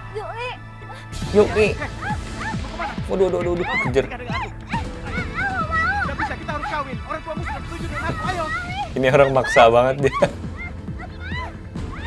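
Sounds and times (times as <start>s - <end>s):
background music: 0.0s - 12.0s
dog barking and yelping: 1.8s - 3.0s, 3.6s - 6.8s, 7.4s - 12.0s.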